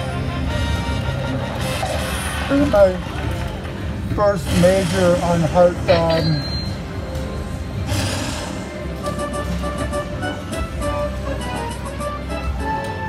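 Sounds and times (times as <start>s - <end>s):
slot machine burst of noise: 0.0s - 3.6s, 4.4s - 6.8s.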